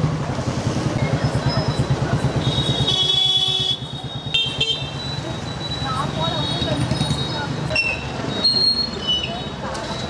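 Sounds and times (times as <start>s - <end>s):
street traffic rumble: 0.0s - 10.0s
high-pitched vehicle horn: 2.5s - 3.8s.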